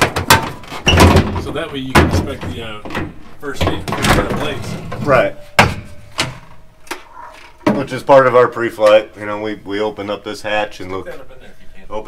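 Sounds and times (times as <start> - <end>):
man talking: 1.2 - 5.5, 7.7 - 12.0.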